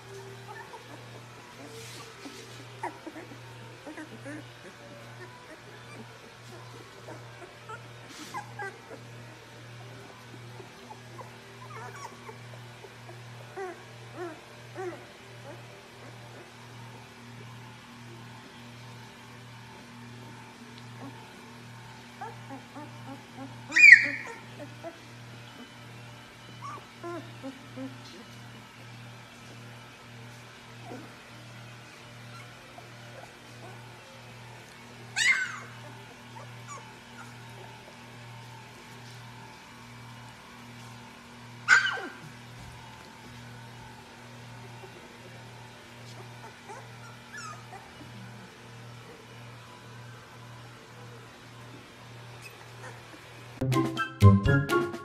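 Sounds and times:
puppies squeaking and whimpering: 0:00.4 - 0:09.4, 0:10.1 - 0:16.6, 0:22.1 - 0:28.7, 0:30.8 - 0:34.0, 0:35.1 - 0:39.2, 0:41.7 - 0:43.4, 0:46.1 - 0:48.2, 0:52.4 - 0:53.3.

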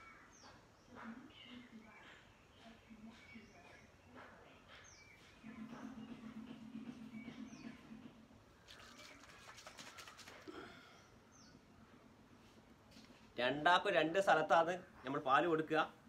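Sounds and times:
small bird chirps: 0:00.0 - 0:11.6.

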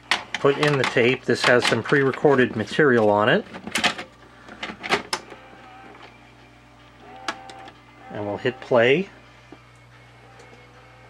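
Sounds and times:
tape-loading motor whirring: 0:04.4 - 0:09.0.

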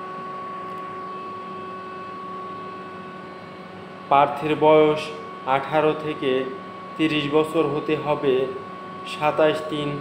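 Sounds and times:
thin steady whine: 0:00.0 - 0:10.0.

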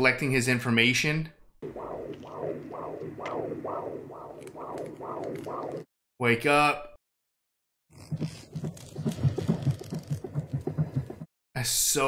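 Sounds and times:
fast low throbbing pulse: 0:01.6 - 0:05.9.

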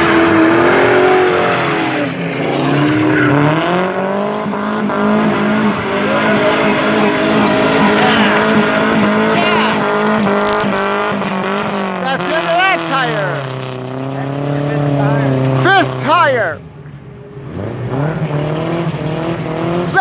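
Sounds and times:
car engines revving hard: 0:00.0 - 0:20.0.

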